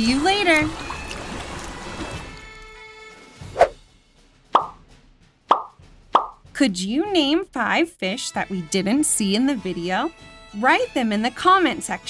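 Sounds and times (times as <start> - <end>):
cartoon pop sound effects: 4.6 - 4.8, 5.5 - 6.4.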